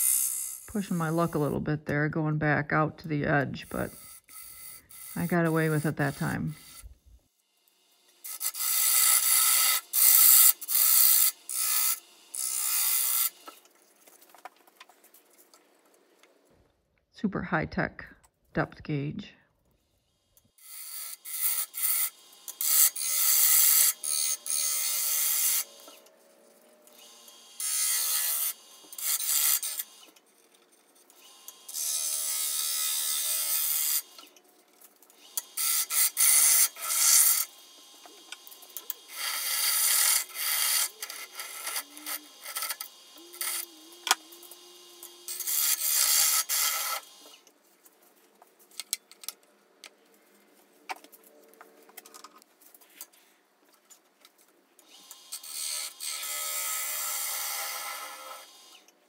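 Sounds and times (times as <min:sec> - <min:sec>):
gouge cutting wood on a lathe: 0:07.8 - 0:13.6, 0:20.6 - 0:26.1, 0:27.0 - 0:30.6, 0:31.2 - 0:34.3, 0:35.2 - 0:47.4, 0:55.0 - 0:58.8.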